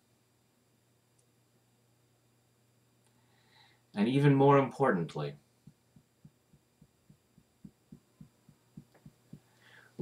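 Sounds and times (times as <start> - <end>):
fingertips tapping collarbone: 5.6 - 9.6.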